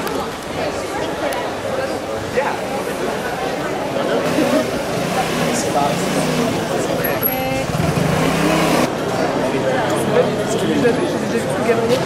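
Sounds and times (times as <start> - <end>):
people talking: 0.0 - 12.0
vehicle engine running: 4.2 - 8.9.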